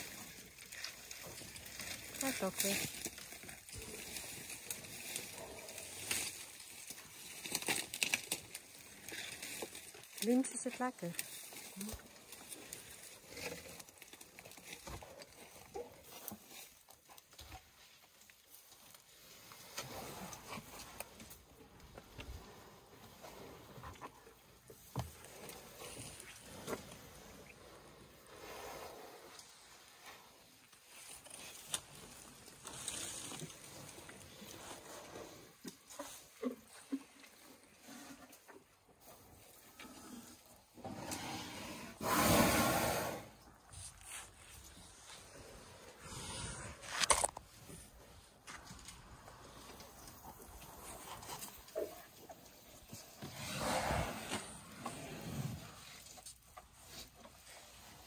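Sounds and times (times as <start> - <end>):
elephants chewing bark: 0.0 - 58.0
elephant trunk sniffing: 39.8 - 47.0, 52.9 - 56.2.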